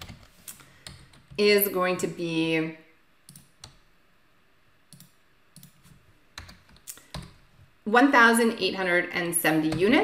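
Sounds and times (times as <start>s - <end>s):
keyboard and mouse clicks: 0.0s - 1.4s, 3.3s - 3.8s, 4.9s - 7.4s.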